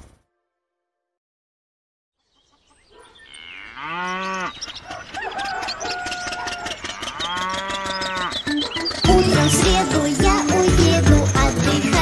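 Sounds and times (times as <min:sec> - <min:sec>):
cartoon cow mooing: 0:06.6 - 0:08.4
whistly tones and clicks: 0:08.4 - 0:09.6.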